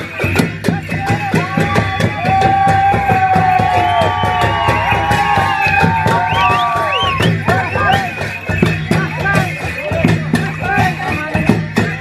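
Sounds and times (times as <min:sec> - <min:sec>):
drum and cymbal music: 0:00.0 - 0:12.0
crowd cheering: 0:00.8 - 0:09.4.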